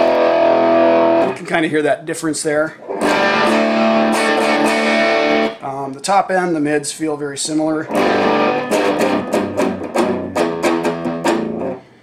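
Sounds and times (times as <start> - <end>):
overdriven electric guitar chords: 0.0 - 1.4, 2.8 - 5.6, 7.9 - 12.0.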